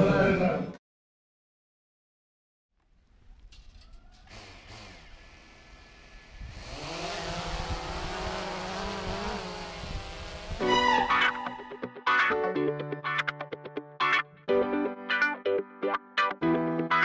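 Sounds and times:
drone propellers buzzing: 0:04.3 - 0:11.9
background music: 0:10.6 - 0:17.0.

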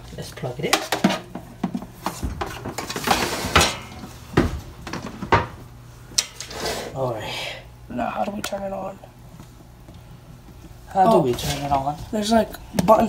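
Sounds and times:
metal basket scraping slide: 0:02.9 - 0:03.8, 0:06.4 - 0:07.0.

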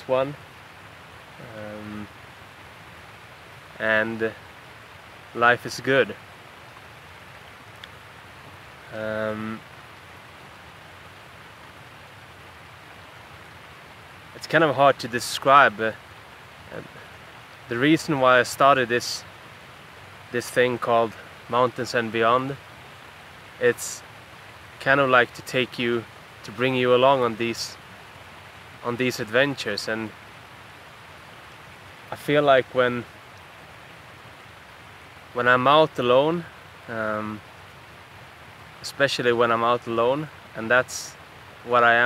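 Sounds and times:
faint outdoor hiss: 0:00.0 - 0:42.0.

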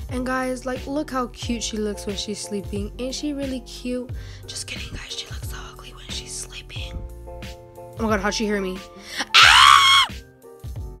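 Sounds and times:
background music: 0:00.0 - 0:11.0
girl screaming: 0:09.3 - 0:10.1.

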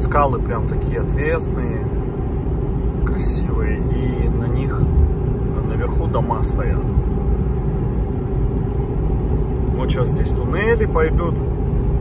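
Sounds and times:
tyres and engine rumble: 0:00.0 - 0:12.0.

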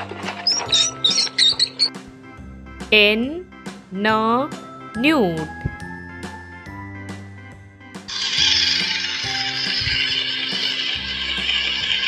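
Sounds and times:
light background music: 0:00.0 - 0:12.0
loud steady hissing: 0:08.1 - 0:12.0.

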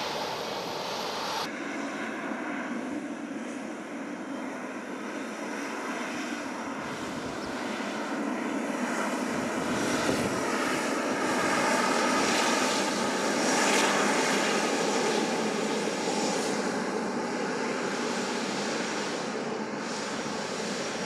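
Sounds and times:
jet engine rumble with whine: 0:00.0 - 0:21.0.

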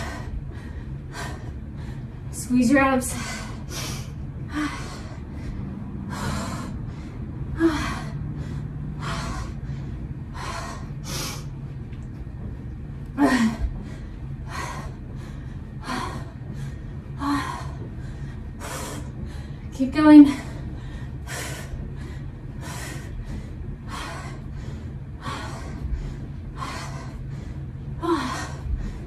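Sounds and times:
woman breathing forcefully: 0:00.0 - 0:29.0.

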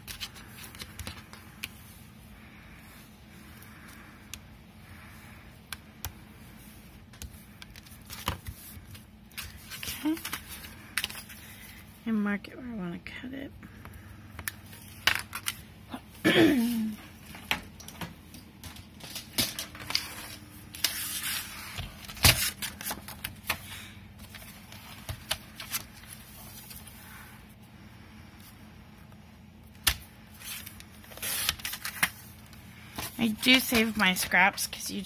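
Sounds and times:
paper rustling: 0:00.0 - 0:02.0, 0:06.4 - 0:11.8, 0:29.8 - 0:34.7.

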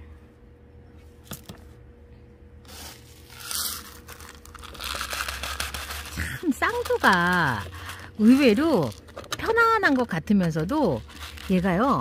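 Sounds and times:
grit crackling in plastic scoop: 0:02.7 - 0:12.0.

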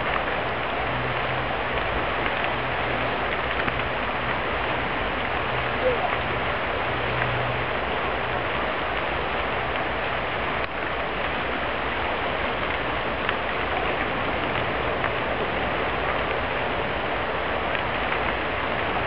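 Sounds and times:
fire pops and crackles: 0:00.0 - 0:07.6, 0:08.2 - 0:19.0
fire rushing: 0:00.0 - 0:19.0.

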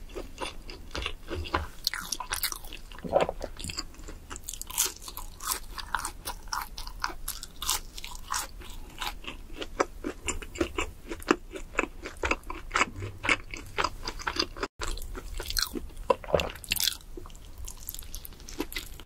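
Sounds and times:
chewing crunchy fried food: 0:00.0 - 0:19.0.

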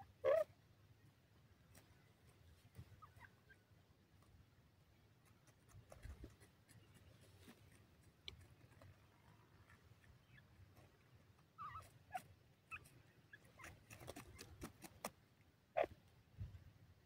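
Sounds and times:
scratching and pecking in soil: 0:01.4 - 0:16.2
soft bird chirps: 0:04.9 - 0:14.6.

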